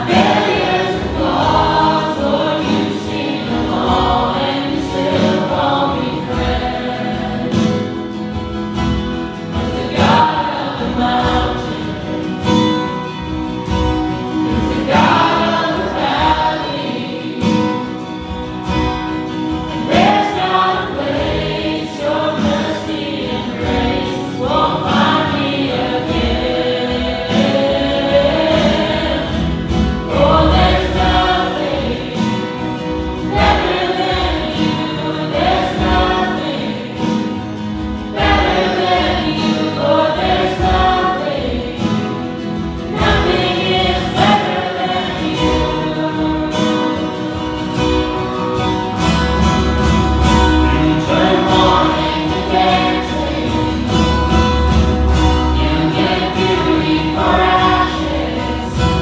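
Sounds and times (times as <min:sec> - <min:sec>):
people singing together: 0:00.0 - 0:59.0
strummed guitars: 0:00.0 - 0:59.0.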